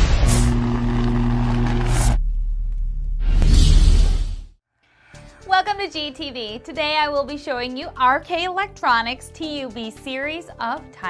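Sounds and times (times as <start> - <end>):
whoosh: 0.0 - 2.4, 3.0 - 4.6.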